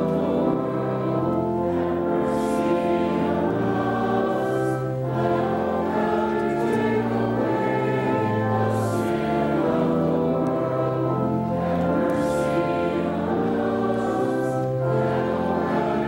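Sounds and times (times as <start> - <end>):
congregation singing: 0.0 - 16.0
organ chords: 0.0 - 16.0.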